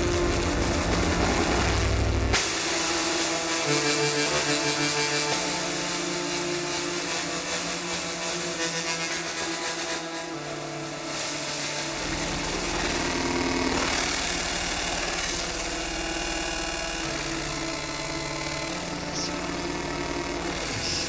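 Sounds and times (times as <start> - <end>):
deep synthesizer bass: 0.0 - 9.6, 10.2 - 21.0.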